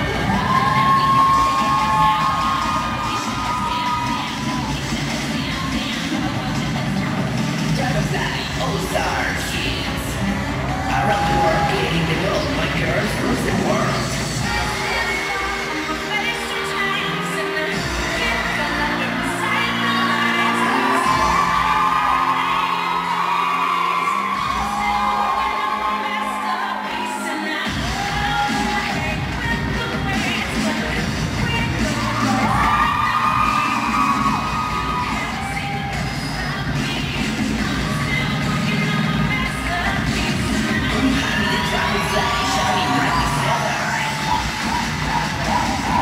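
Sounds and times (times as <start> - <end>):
crowd whooping: 0.0 - 4.9, 10.6 - 12.3, 18.2 - 29.2, 31.8 - 36.4, 37.8 - 46.0
spectators cheering and screaming: 0.0 - 6.1, 10.2 - 30.7, 31.4 - 36.9, 37.6 - 46.0
music playing: 0.0 - 46.0.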